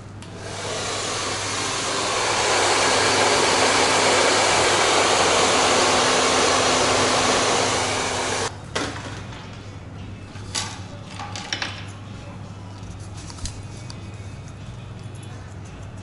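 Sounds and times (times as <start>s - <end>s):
hair dryer blowing: 0.2s - 8.5s.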